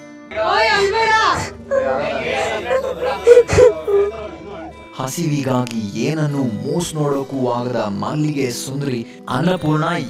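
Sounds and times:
background music: 0.0s - 10.0s
person making breathy sounds: 1.7s - 4.2s.

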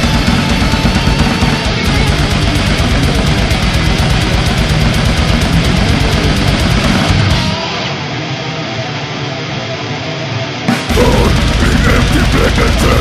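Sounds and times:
fast dense drumming: 0.0s - 7.6s, 10.7s - 13.0s
distorted electric guitars: 0.0s - 13.0s.

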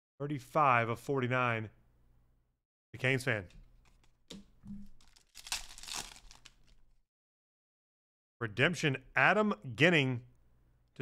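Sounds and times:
wrapper being torn and crinkled: 4.8s - 7.0s.

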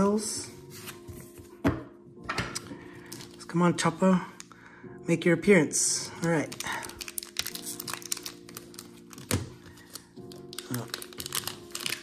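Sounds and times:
soft background music: 0.0s - 12.0s
plastic wrapper crinkling and tearing: 2.6s - 3.5s, 6.2s - 12.0s.

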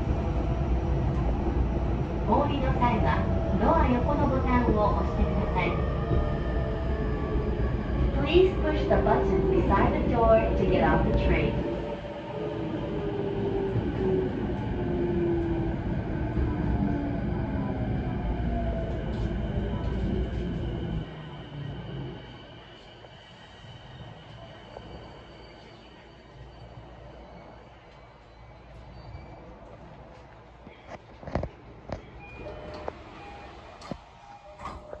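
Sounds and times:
train wheels rumbling: 0.0s - 35.0s.

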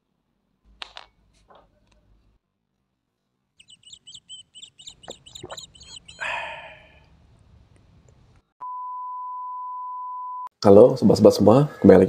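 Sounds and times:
small birds chirping: 3.6s - 8.4s.

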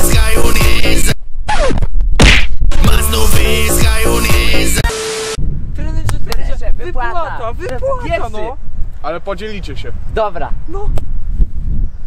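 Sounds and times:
loud noisy whack: 2.2s - 2.6s
tone sliding down in pitch: 4.8s - 5.4s.

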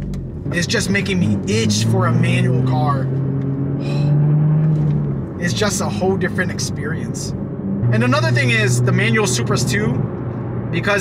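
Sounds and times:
car engine drone from inside: 0.0s - 11.0s.

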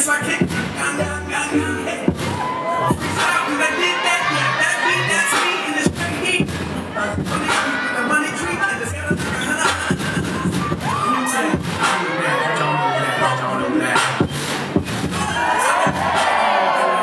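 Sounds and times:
hip-hop dance music over speakers: 0.0s - 17.0s
audience cheering and screaming: 2.0s - 17.0s.

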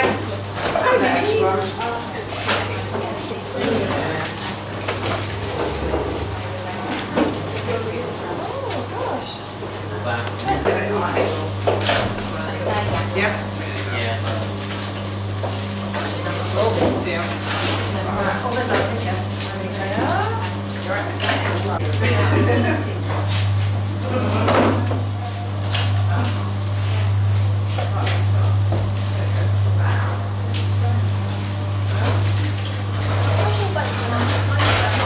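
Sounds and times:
people chatting: 0.0s - 4.4s, 6.5s - 14.5s, 15.9s - 23.2s, 31.9s - 35.0s
trays and utensils clinking: 10.5s - 26.5s, 31.9s - 35.0s.

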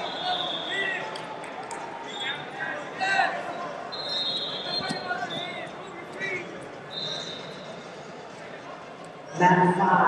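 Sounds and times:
murmur of voices in echoing hall: 0.0s - 10.0s.

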